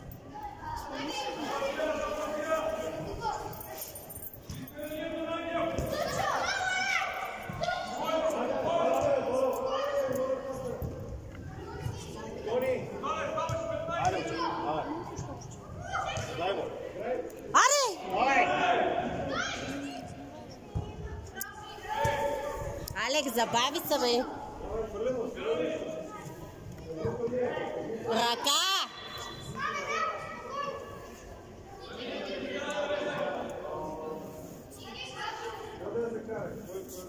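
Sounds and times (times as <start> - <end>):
children calling out in a hall: 5.8 - 10.6, 19.0 - 20.3, 27.8 - 33.0.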